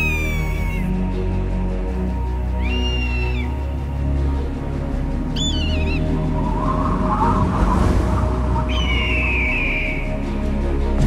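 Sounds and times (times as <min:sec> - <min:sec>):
high animal cries: 0:00.0 - 0:00.9.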